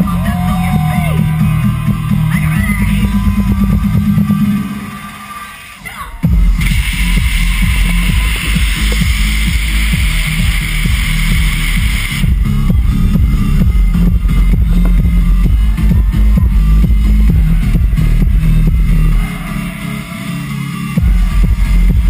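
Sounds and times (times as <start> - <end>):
electronic dance music with heavy bass: 0.0 - 22.0
co two cannons hissing: 6.5 - 12.3.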